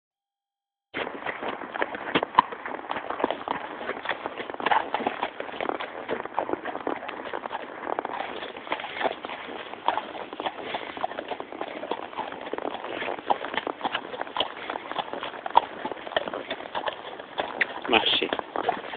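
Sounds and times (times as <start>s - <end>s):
horse hooves on dirt: 1.0s - 18.9s.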